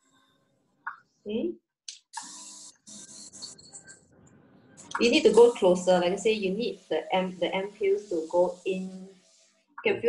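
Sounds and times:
airbrush hissing: 2.2s - 3.6s, 4.8s - 9.6s.

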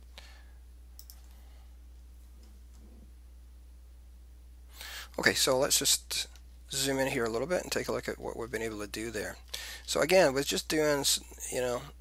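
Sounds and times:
low electrical hum: 0.0s - 12.0s
person breathing in: 4.7s - 5.2s, 9.5s - 9.9s.

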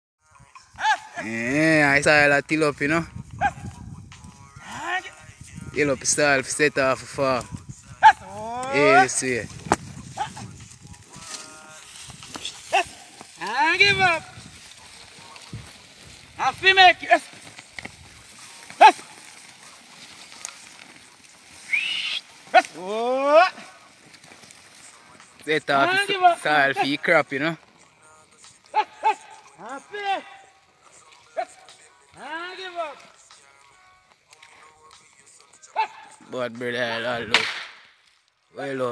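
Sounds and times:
man shouting calls: 0.4s - 15.8s, 16.4s - 17.5s, 18.3s - 20.0s, 21.6s - 23.9s, 24.9s - 27.6s, 28.6s - 33.6s, 35.6s - 37.5s
cattle lowing: 7.6s - 26.3s.

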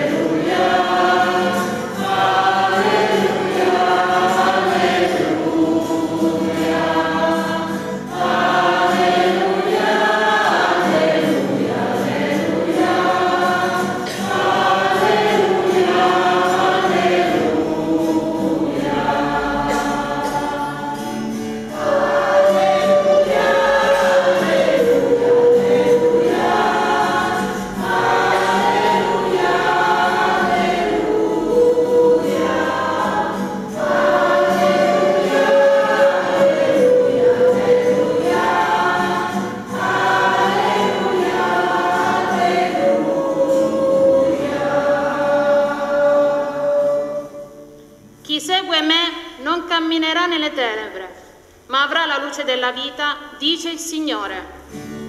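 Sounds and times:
church choir singing: 0.0s - 48.2s.

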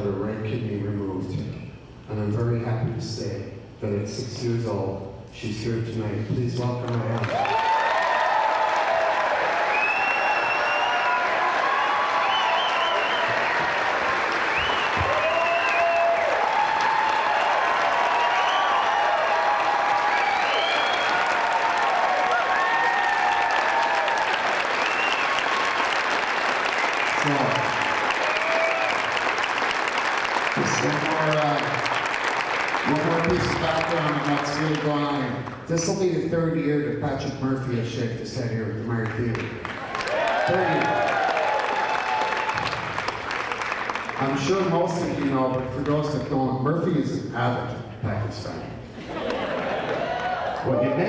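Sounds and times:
audience applauding: 6.7s - 36.0s, 38.9s - 46.1s, 49.0s - 51.0s
cheers and whoops: 7.2s - 26.0s, 26.6s - 29.7s, 39.8s - 43.0s, 49.8s - 51.0s.

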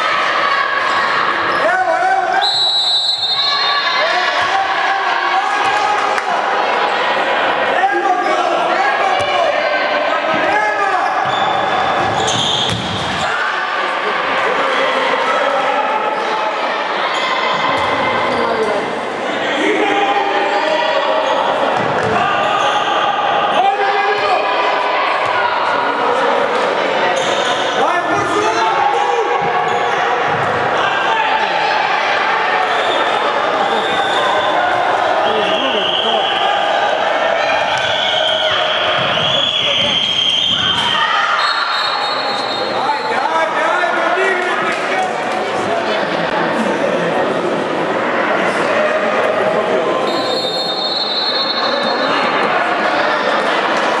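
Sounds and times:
voices and shouts in a hall: 0.0s - 54.0s.

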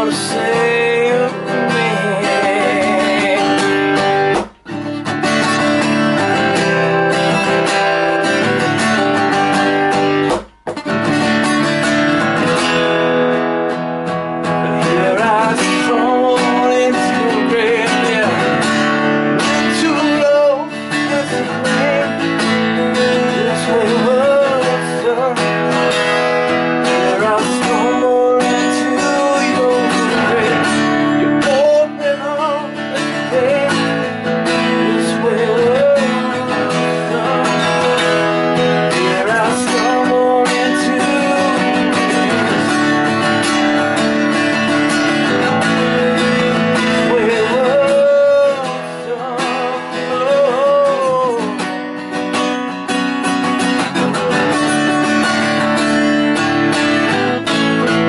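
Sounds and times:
wordless vocal line: 0.0s - 4.4s, 14.4s - 51.8s
acoustic guitar strumming: 0.0s - 58.0s.

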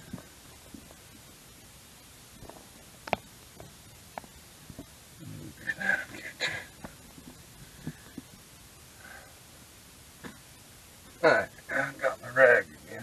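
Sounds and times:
muffled burst of noise: 0.0s - 13.0s
small clicks and knocks: 2.4s - 4.9s.

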